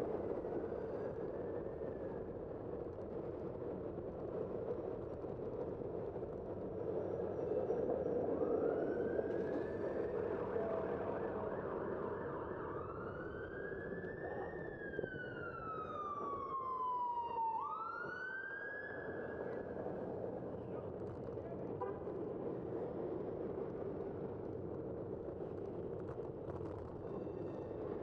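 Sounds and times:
city traffic noise: 0.0s - 28.0s
ambulance siren wailing: 8.2s - 20.4s.

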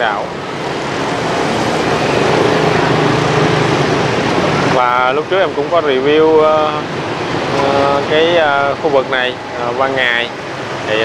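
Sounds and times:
street traffic: 0.0s - 11.0s
vehicle engine running: 0.3s - 5.7s.

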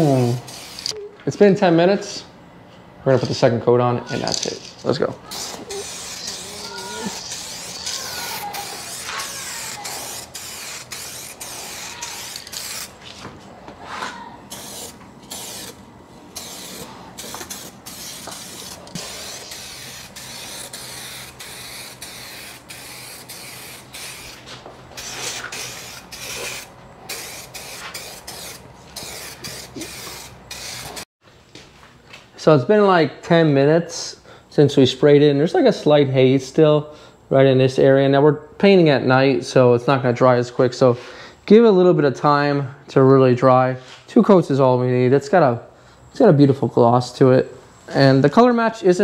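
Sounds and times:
aerosol can spraying: 0.0s - 1.0s, 5.3s - 13.0s, 14.5s - 31.1s.

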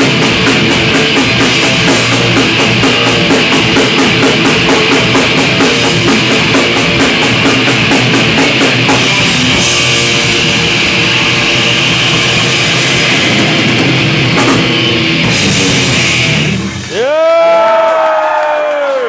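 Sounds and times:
distorted electric guitar: 0.0s - 17.1s
bass guitar: 0.0s - 17.6s
drum kit: 0.0s - 17.6s.

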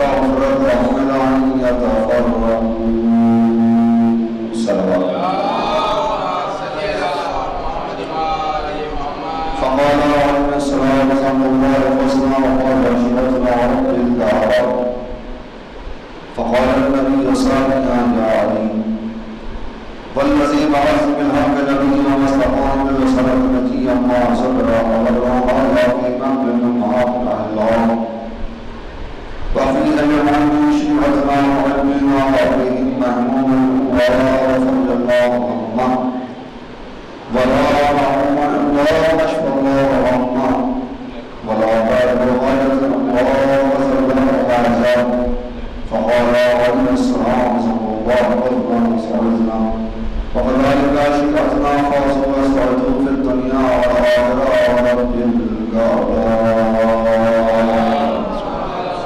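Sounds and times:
man chanting recitation: 0.0s - 15.4s, 16.3s - 19.1s, 20.1s - 28.4s, 29.5s - 36.5s, 37.2s - 59.0s
background noise: 0.0s - 59.0s.

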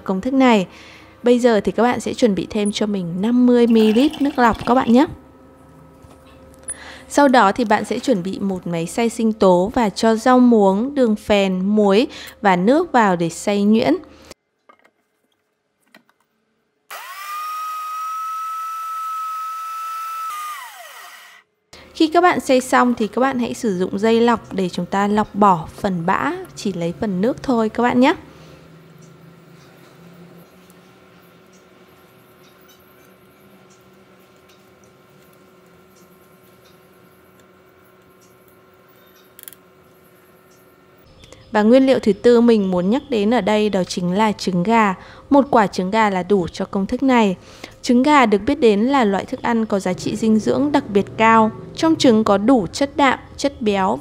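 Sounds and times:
water dripping into bowl: 3.7s - 5.0s
blender motor whining: 16.9s - 21.5s.

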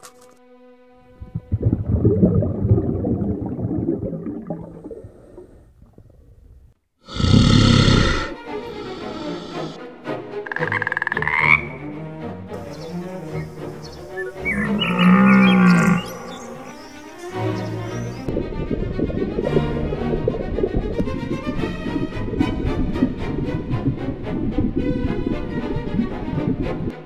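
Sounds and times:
music: 0.0s - 1.8s, 8.1s - 27.0s
animal calls and cries: 12.6s - 18.3s.

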